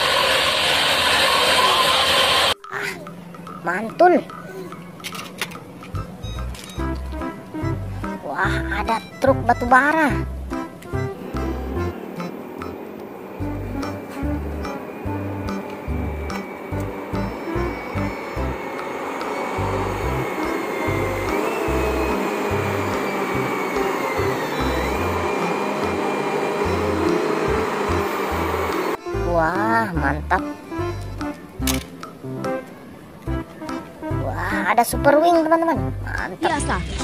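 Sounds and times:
haul truck engine drone: 0.0 - 37.0
background music with steady beat: 2.6 - 37.0
high whine falling in pitch: 9.6 - 29.0.

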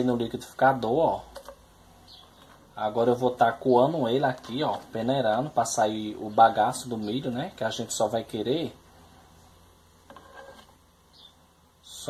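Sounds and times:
spoon scraping a plastic sieve: 10.0 - 10.8.

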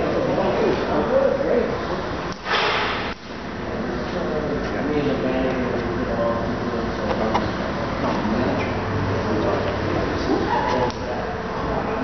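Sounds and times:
people talking: 0.0 - 2.2, 3.7 - 12.0.

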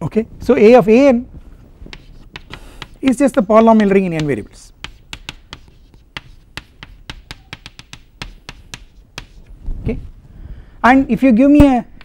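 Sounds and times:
chalk tapping on a blackboard: 1.9 - 9.5.

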